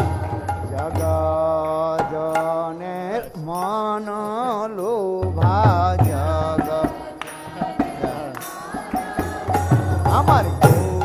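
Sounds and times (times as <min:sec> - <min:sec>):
person chanting: 0:09.2 - 0:11.0.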